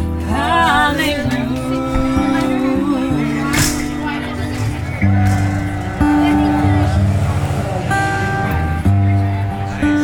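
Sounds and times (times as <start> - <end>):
strummed acoustic guitar: 0.0 - 10.0
woman singing: 0.1 - 4.5.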